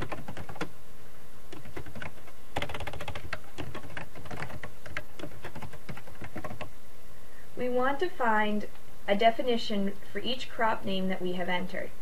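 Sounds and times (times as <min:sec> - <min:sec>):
typing on computer keyboard: 0:00.0 - 0:00.7, 0:01.5 - 0:06.7.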